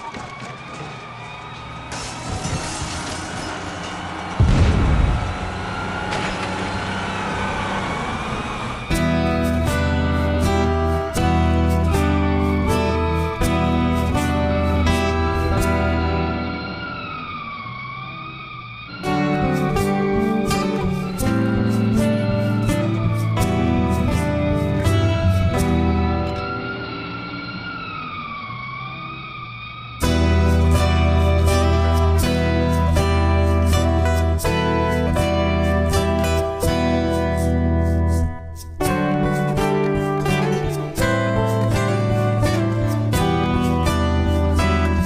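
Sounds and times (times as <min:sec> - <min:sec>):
dense traffic-like noise: 0:00.0 - 0:38.8
guitar: 0:00.0 - 0:45.0
low sustained backing: 0:01.8 - 0:45.0.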